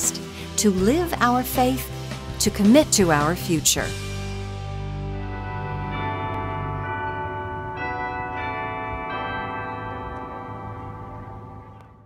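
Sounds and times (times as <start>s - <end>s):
sustained chord: 4.1s - 12.0s
bell-like chimes: 5.2s - 12.0s.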